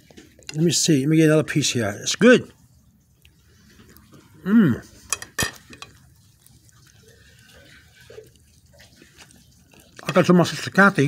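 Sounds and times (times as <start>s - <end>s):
person chewing wetly: 0.0s - 0.8s, 2.5s - 11.0s.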